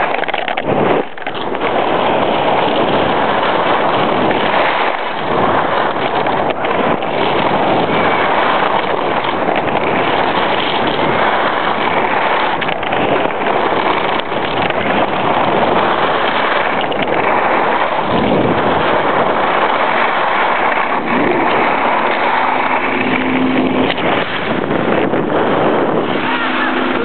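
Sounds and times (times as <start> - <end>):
wind on microphone: 0.0 - 27.0.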